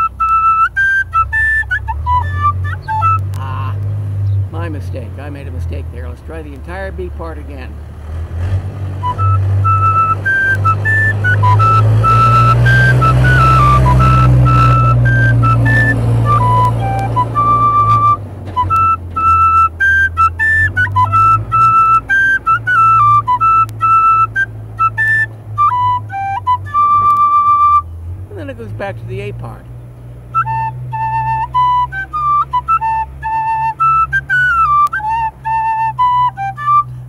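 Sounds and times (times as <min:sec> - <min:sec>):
tin whistle melody: 0:00.0 - 0:03.7, 0:09.0 - 0:28.0, 0:30.3 - 0:37.0.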